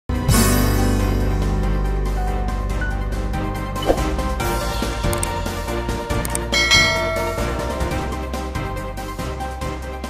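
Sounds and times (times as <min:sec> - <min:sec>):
background music: 0:00.1 - 0:10.0
bell-like chime: 0:06.5 - 0:08.1.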